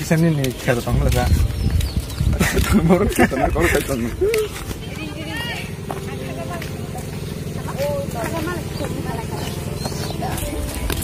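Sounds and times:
people talking: 2.5 - 11.0.

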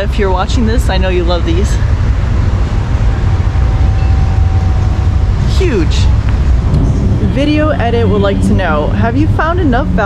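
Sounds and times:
wind buffeting microphone: 0.0 - 10.0
faint steady high tone: 2.7 - 6.6.

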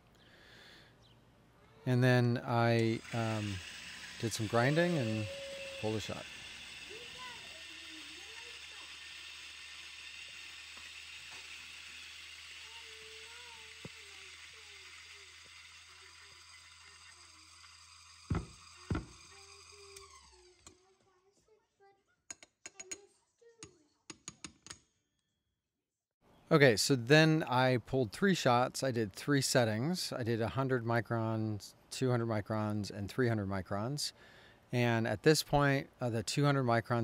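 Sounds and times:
coffee grinder motor humming: 2.6 - 21.0
sharp knocks: 18.3 - 19.2.

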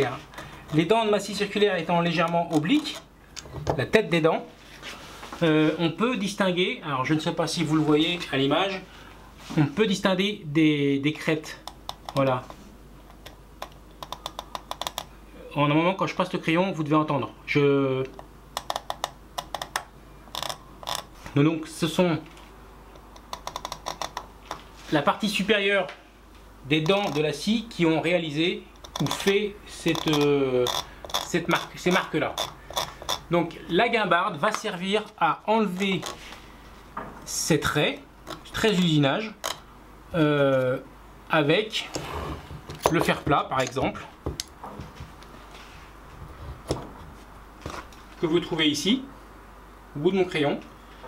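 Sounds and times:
faint room hum: 0.0 - 51.0
pencil tip clicking along wood: 11.6 - 12.3, 13.1 - 15.1, 18.6 - 21.1, 23.0 - 24.6, 28.8 - 29.3.

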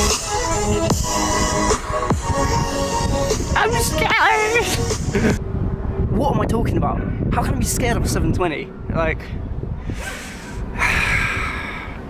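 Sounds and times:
man breathing hard: 9.8 - 12.0.

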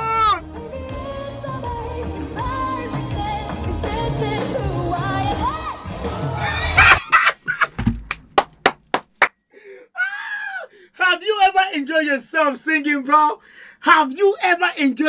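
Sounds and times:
man yelling: 0.0 - 0.4.

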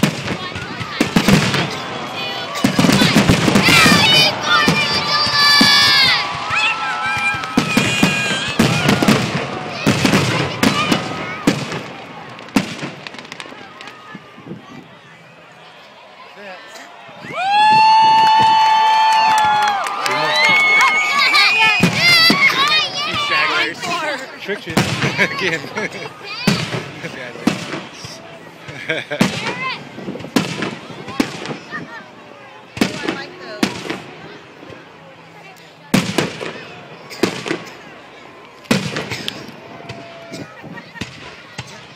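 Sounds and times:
fireworks bursting and crackling: 0.0 - 14.2, 20.3 - 31.9, 32.8 - 34.2, 35.9 - 36.6, 37.2 - 37.8, 38.6 - 40.1
people shouting and cheering: 0.0 - 41.9.

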